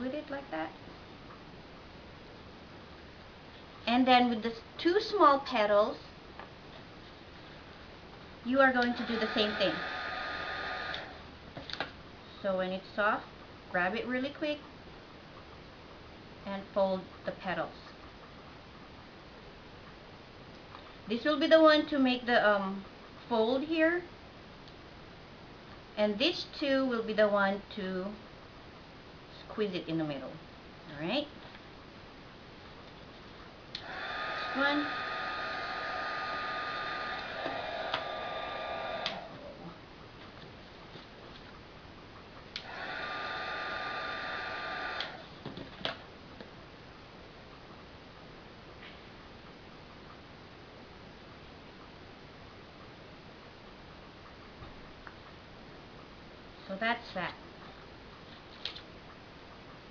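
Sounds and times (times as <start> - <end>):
heat gun fan whine: 8.5 - 11.9, 33.5 - 40.2, 42.2 - 46.6.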